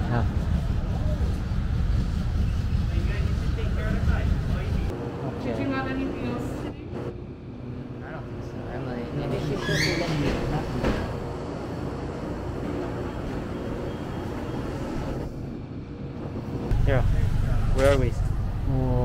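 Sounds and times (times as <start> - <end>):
rising squeal: 9.3 - 10.8, 12.8 - 15.3
loud low rumble: 16.7 - 19.0.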